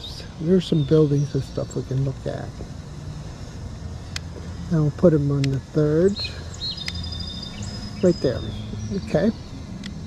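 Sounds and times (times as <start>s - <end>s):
small bird chirping and trilling: 0.0s - 2.5s, 4.7s - 10.0s.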